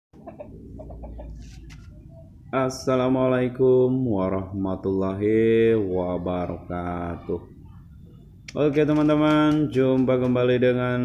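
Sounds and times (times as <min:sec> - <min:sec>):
rooster clucking: 0:00.2 - 0:02.5.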